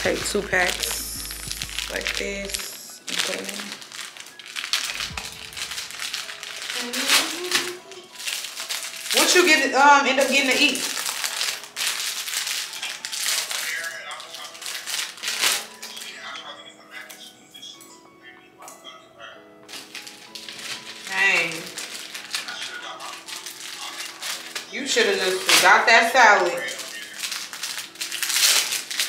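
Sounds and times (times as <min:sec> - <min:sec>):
plastic packets crinkling: 0:00.0 - 0:16.4, 0:19.6 - 0:29.0
soft background music: 0:00.0 - 0:29.0.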